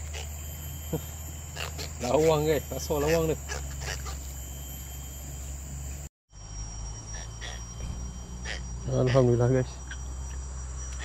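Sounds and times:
low outdoor hum: 0.0s - 11.0s.

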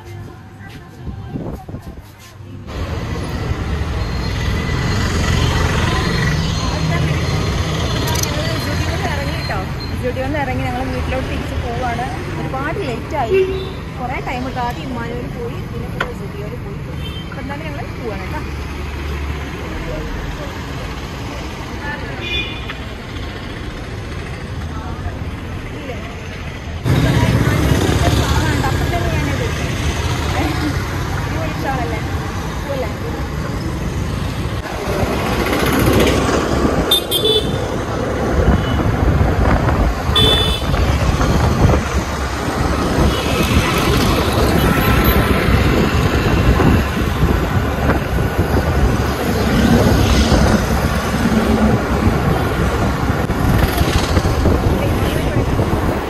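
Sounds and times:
scooter engine and wind rush: 0.0s - 6.8s, 26.8s - 56.0s
vehicle horns tooting: 13.3s - 13.9s, 36.9s - 37.8s, 40.1s - 40.9s.

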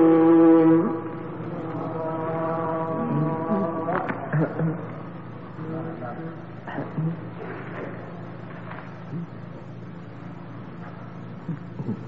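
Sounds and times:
man chanting recitation: 0.0s - 8.0s.

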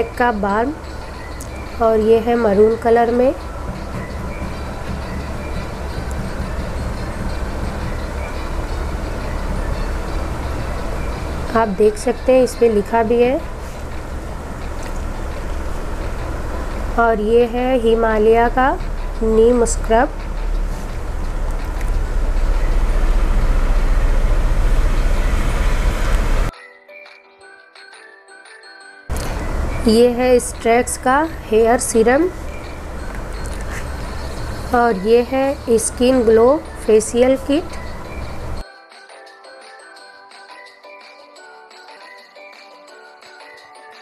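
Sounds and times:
steady low rumble: 0.0s - 26.5s, 29.1s - 38.6s.

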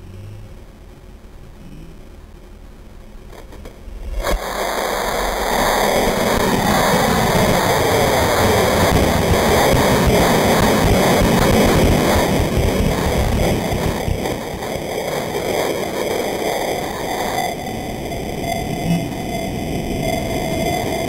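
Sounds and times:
rocket motor roaring: 3.3s - 21.0s.

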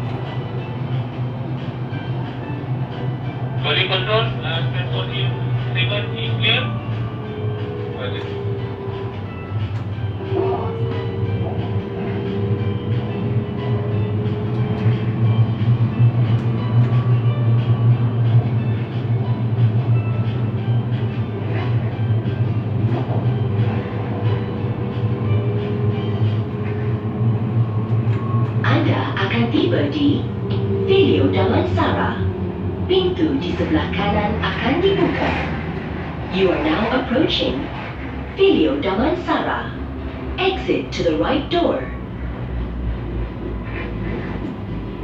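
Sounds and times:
metro train rumbling: 0.0s - 45.0s.

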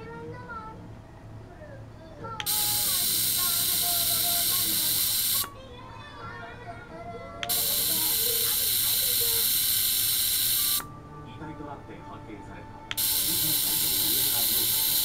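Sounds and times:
ultrasonic device hissing: 2.4s - 5.6s, 7.4s - 10.9s, 12.9s - 15.0s.

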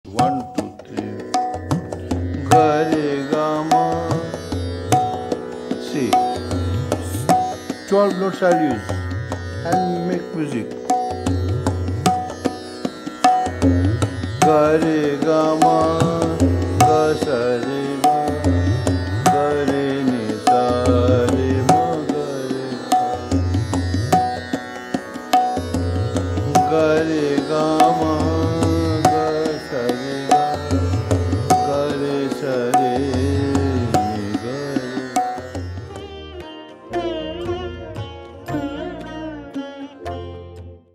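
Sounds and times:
man singing: 0.0s - 1.6s, 2.2s - 4.8s, 14.4s - 23.4s, 26.4s - 35.6s
tabla strokes: 0.1s - 40.4s
harmonium note: 0.6s - 40.9s
tanpura drone: 0.9s - 40.8s.

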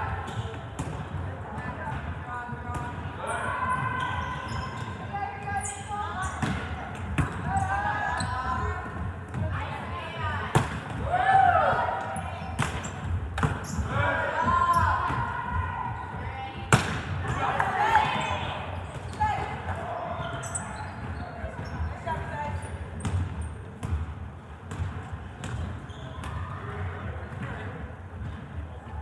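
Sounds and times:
volleyballs smacking: 16.7s - 17.7s
players shouting: 17.2s - 20.6s.

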